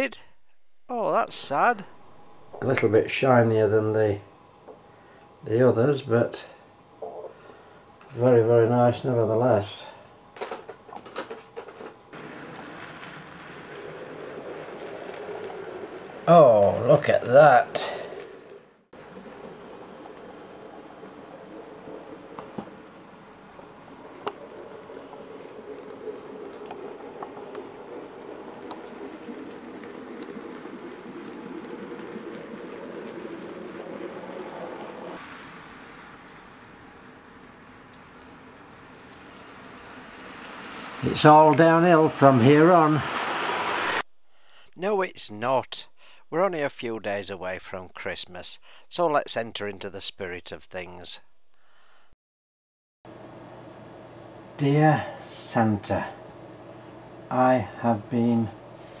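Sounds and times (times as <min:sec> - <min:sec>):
model train running on track: 0:11.8 - 0:44.0.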